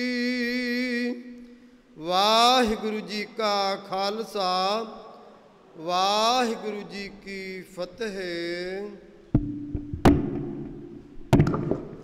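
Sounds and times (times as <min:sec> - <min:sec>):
sharp drum strokes: 0:09.4 - 0:11.0.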